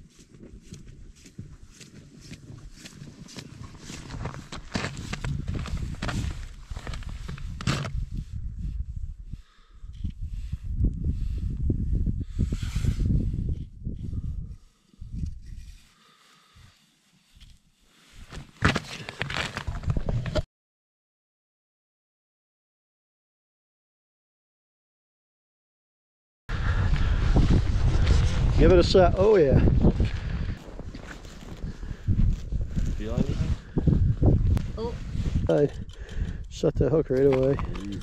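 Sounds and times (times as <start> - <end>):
footsteps crunching on snow: 0.0 - 7.5, 26.7 - 33.7.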